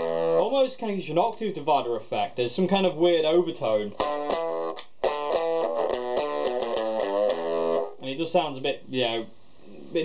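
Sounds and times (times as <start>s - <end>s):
distorted electric guitar: 0.0s - 0.5s, 3.9s - 8.0s.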